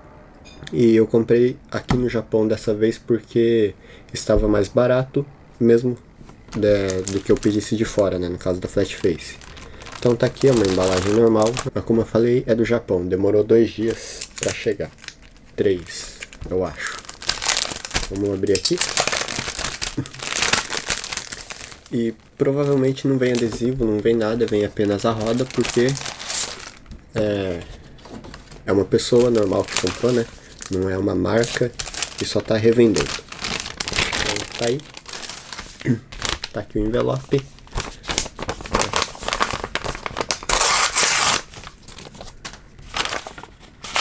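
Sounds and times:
plastic envelope crinkling: 0:06.3 - 0:11.7, 0:13.8 - 0:44.0
paper tearing: 0:24.5 - 0:26.8, 0:37.7 - 0:42.0, 0:42.9 - 0:44.0.

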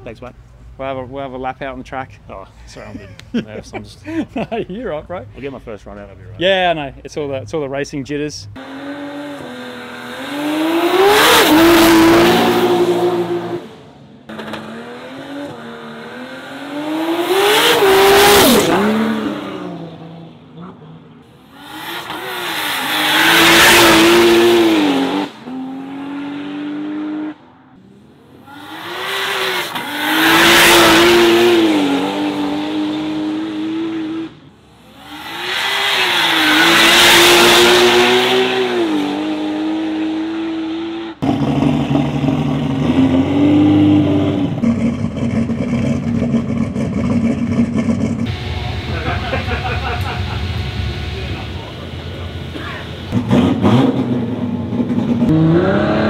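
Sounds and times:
drag car engine revving hard: 0:08.6 - 0:20.2, 0:21.4 - 0:27.4, 0:28.4 - 0:56.0.

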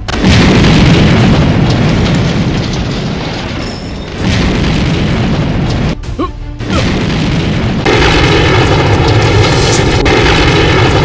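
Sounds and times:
rumbling explosions: 0:00.0 - 0:11.0.

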